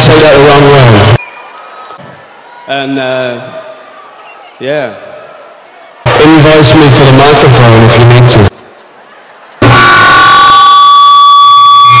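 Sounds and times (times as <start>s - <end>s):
man speaking: 6.1s - 8.5s
loud distorted horn-like tone: 9.6s - 12.0s.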